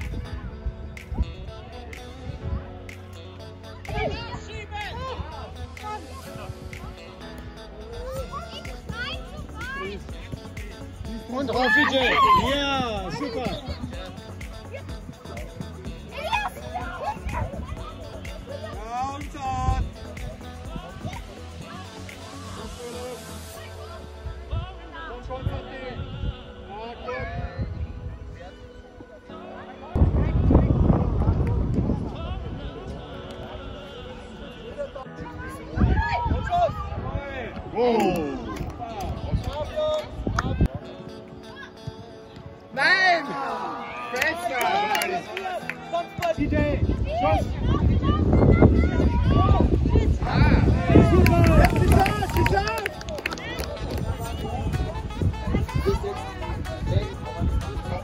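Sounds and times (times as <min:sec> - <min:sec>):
high voices shouting: 0:07.1 - 0:21.3.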